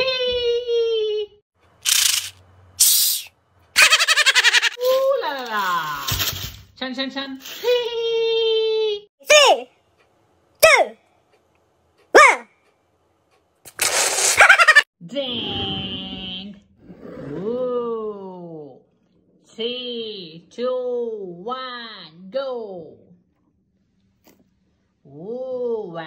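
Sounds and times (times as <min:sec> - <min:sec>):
short hissing bursts: 0:01.8 - 0:03.3, 0:13.7 - 0:14.8
man laughing loudly: 0:03.8 - 0:04.8, 0:14.4 - 0:14.8.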